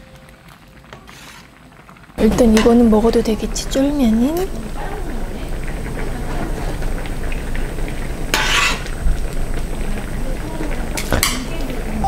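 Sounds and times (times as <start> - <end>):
food bubbling in a pan: 0.1 - 12.0
ladle scraping pan: 1.0 - 1.6, 8.1 - 9.0.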